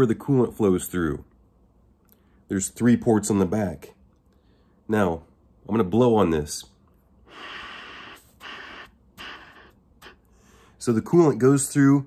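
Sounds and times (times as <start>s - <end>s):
man blowing air through cooler: 7.2s - 10.8s.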